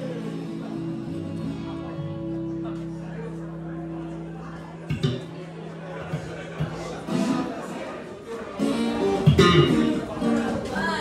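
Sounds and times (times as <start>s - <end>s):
electric bass: 0.0s - 7.5s, 8.8s - 10.8s
electric guitar: 8.6s - 11.0s.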